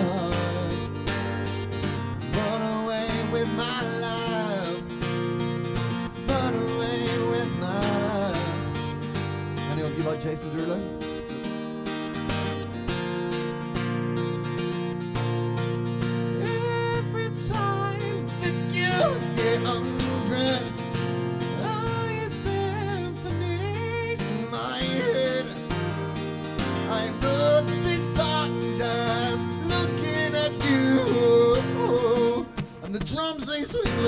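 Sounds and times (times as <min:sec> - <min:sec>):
man singing: 0:00.0 - 0:09.0, 0:16.3 - 0:34.0
acoustic guitar strumming: 0:00.0 - 0:34.0.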